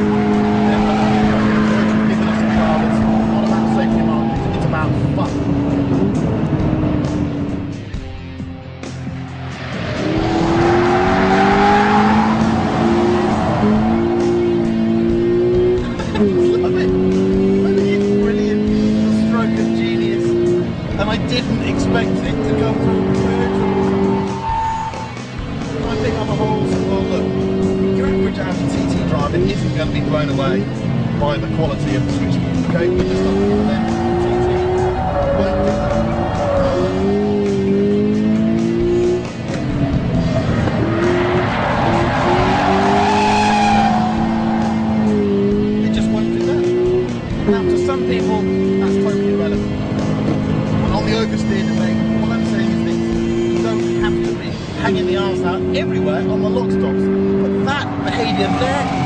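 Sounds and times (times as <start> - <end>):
car engine revving high: 0.0 - 59.0
tyres squealing: 10.4 - 14.4, 22.8 - 25.2, 33.2 - 37.9, 40.2 - 45.5, 57.6 - 59.0.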